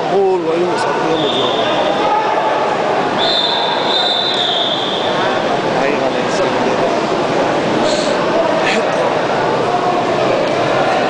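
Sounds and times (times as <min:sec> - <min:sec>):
background voices in hall: 0:00.0 - 0:11.0
high steady whistle: 0:01.1 - 0:02.0, 0:03.2 - 0:05.4.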